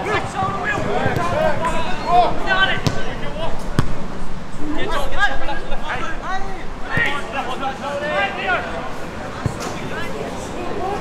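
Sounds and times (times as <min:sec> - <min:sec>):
football kicks: 0:02.8 - 0:04.0.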